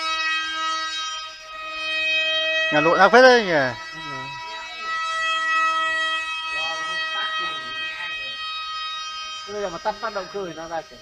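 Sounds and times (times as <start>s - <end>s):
model plane motor whine: 0.0s - 11.0s.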